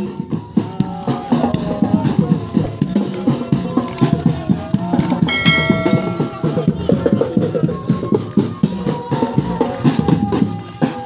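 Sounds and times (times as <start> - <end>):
bright bell-like ringing: 5.3 - 7.2.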